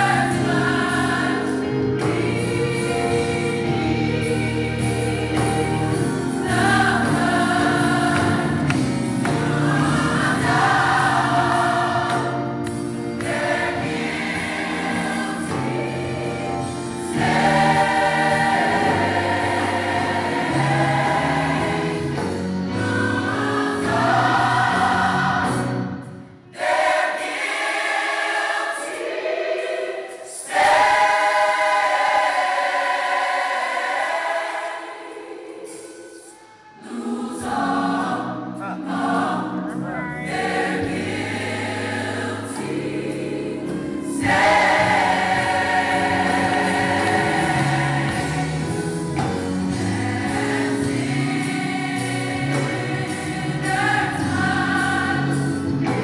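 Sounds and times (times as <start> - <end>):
instrumental backing: 0.0 - 28.0, 36.8 - 56.0
choir singing: 0.0 - 56.0.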